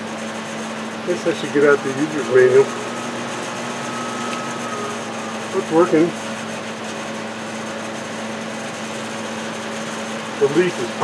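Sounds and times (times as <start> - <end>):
exhaust fan motor hum: 0.0 - 11.0.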